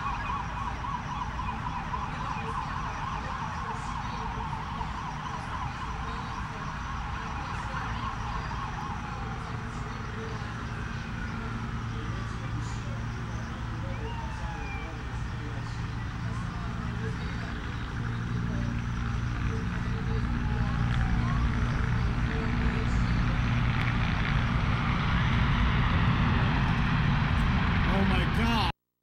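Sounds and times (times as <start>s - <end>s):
sirens sweeping in pitch: 0.0s - 26.6s
low engine drone: 0.0s - 28.7s.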